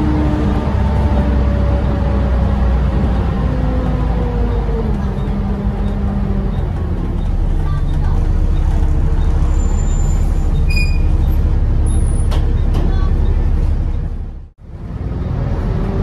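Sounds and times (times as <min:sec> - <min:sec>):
bus diesel engine drone: 0:00.0 - 0:16.0.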